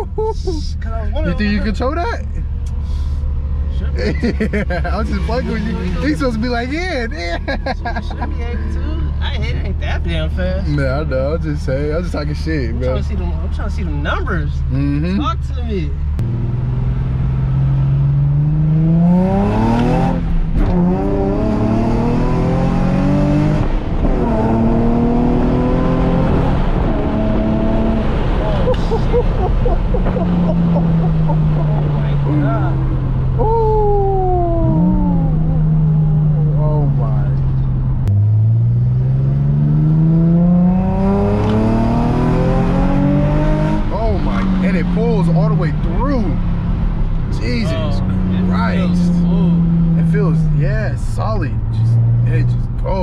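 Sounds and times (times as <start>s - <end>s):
car engine accelerating through gears: 16.1s - 53.0s.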